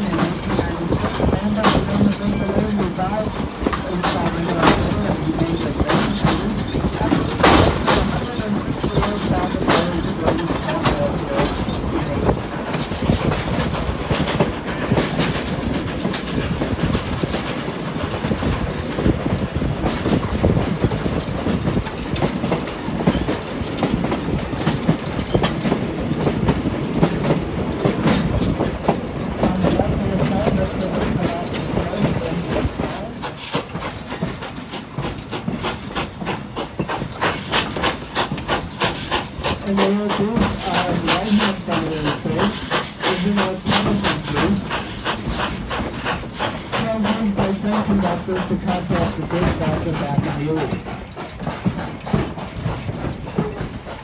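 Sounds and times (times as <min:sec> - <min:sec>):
train wheels rumbling and clattering: 0:00.0 - 0:54.0.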